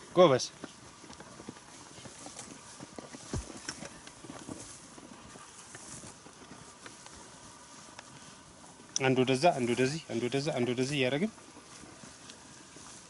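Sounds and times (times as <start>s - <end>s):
light knocks and thuds: 3.1s - 3.9s.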